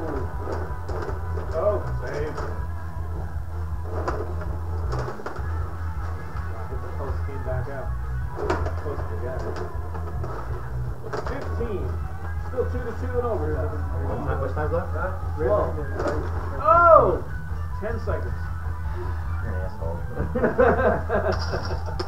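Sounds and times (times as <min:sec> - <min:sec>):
background speech: 0:00.0 - 0:03.3, 0:04.9 - 0:20.4
music: 0:00.0 - 0:22.0.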